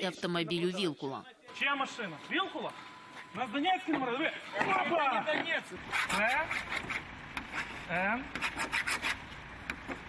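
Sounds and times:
men's voices: 0.1s - 6.5s
sharp object scratching car paint: 5.8s - 10.0s.

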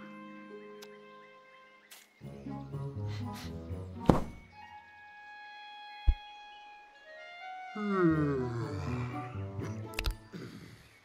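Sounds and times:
orchestral music with held notes: 0.0s - 11.0s
heavy thumps: 4.0s - 4.4s.

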